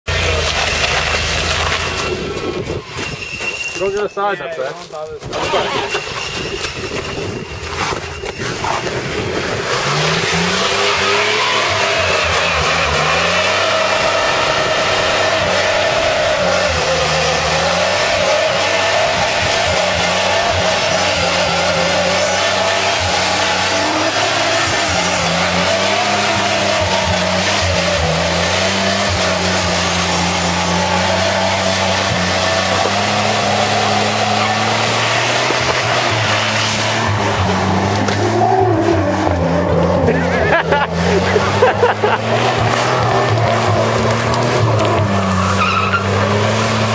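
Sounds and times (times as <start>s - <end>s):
tire spinning hiss: 5.6s - 46.9s
engine revving high: 8.4s - 46.9s.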